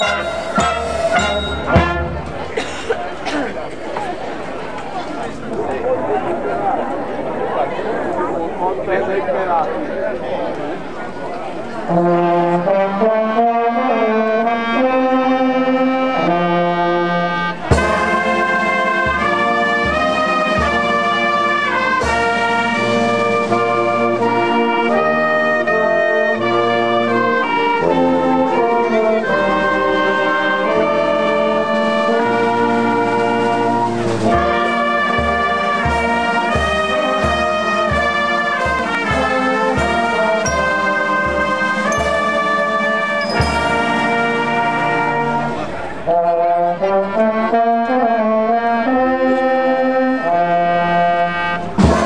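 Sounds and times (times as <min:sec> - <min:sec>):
wind band playing: 0:00.0 - 0:03.3, 0:11.5 - 0:52.0.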